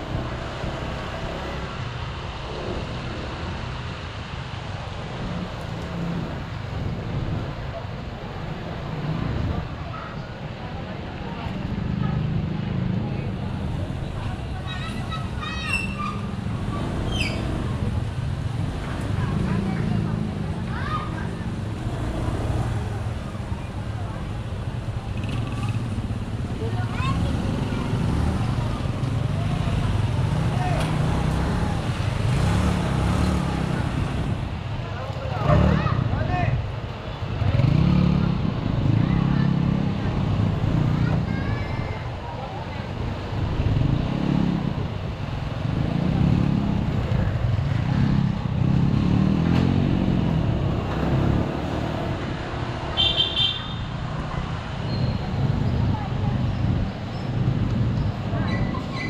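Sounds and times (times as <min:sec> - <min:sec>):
road and wind noise: 0:00.0 - 0:59.0.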